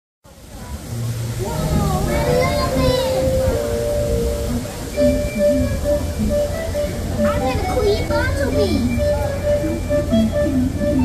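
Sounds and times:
low city rumble: 0:00.2 - 0:11.0
crowd chatter: 0:00.3 - 0:11.0.

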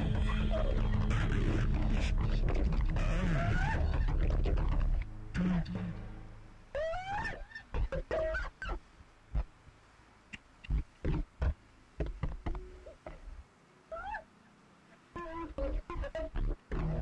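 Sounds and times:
effects-processed squeals: 0:00.0 - 0:08.8.

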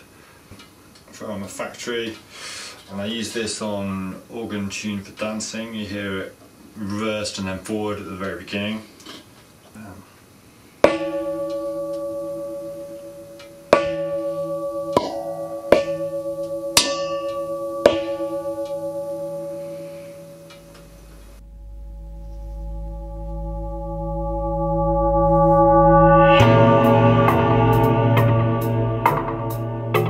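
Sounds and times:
metal lamp shade ringing: 0:10.8 - 0:29.7
deep low hum: 0:17.6 - 0:30.0.

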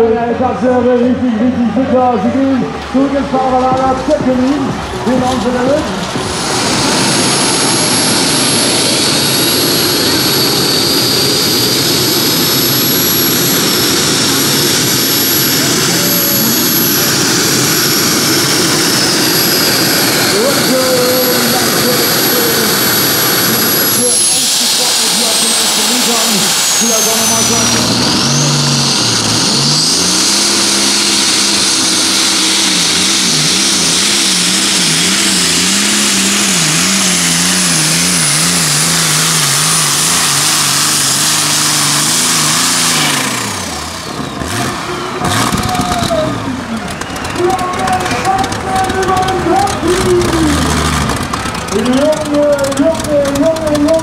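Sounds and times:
high supercharger whine: 0:00.0 - 0:54.0
tractor engines running flat out: 0:00.0 - 0:54.0.

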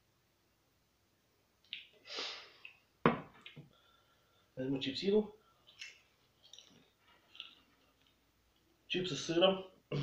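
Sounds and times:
glass mug knocking on wooden table: 0:03.0 - 0:03.4.

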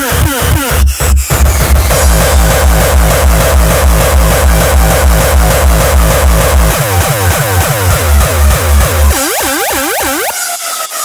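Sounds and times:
fast heavy kick drum: 0:00.0 - 0:09.2
dense synths: 0:00.0 - 0:11.0
swooping synth lines: 0:00.0 - 0:11.0.

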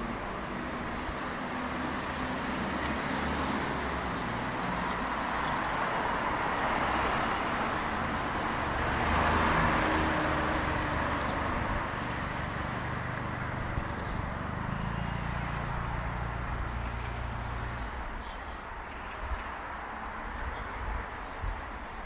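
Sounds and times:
cars passing: 0:00.0 - 0:22.0.

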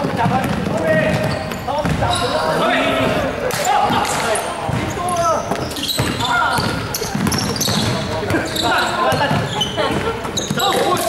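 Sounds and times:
basketball bouncing on hardwood: 0:00.0 - 0:02.1, 0:05.5 - 0:08.5
players calling out: 0:00.0 - 0:11.0.

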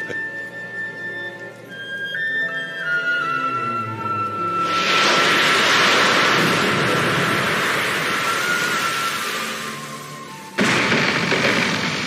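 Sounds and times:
ocean wave crashing: 0:04.6 - 0:12.0.

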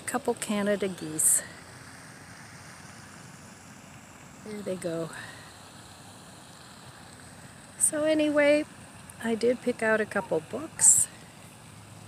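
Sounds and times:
faint steady rushing noise: 0:00.0 - 0:12.0.

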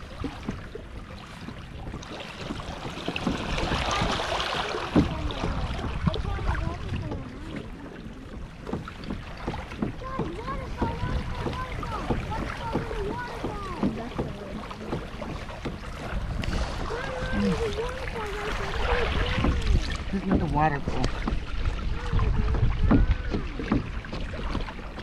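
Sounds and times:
water splashing along hull: 0:00.0 - 0:25.0
wind on microphone: 0:00.0 - 0:25.0.

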